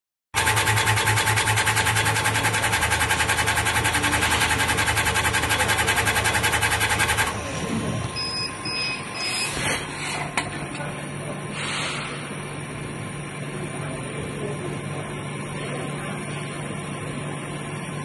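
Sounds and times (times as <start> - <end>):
machine hum: 0.4 - 18.0
short beeps: 8.2 - 9.8.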